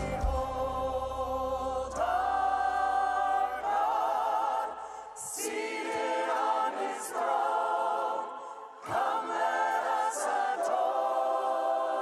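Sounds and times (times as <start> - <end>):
choir voices: 0.0 - 12.0.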